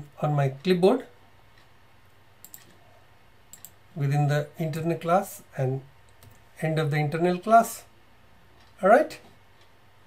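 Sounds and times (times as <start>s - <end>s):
mouse and keyboard clicks: 2.4s - 2.8s, 3.5s - 3.8s.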